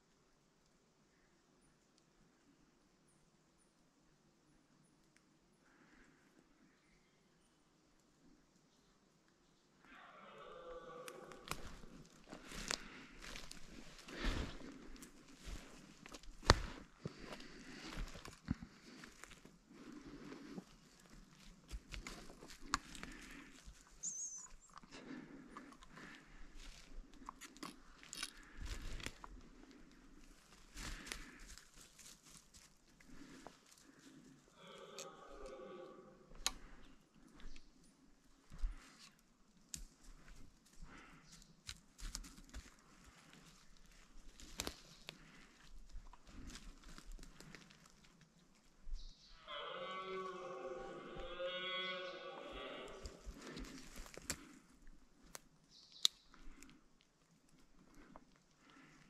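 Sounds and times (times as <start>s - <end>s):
footsteps crunching through twigs: 11.2s - 24.6s, 30.2s - 35.5s, 39.7s - 48.7s, 50.4s - 55.4s.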